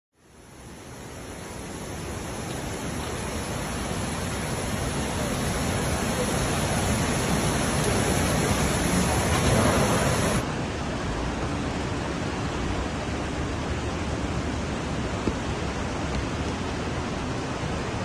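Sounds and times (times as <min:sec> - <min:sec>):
rushing flood torrent: 0:00.2 - 0:18.0.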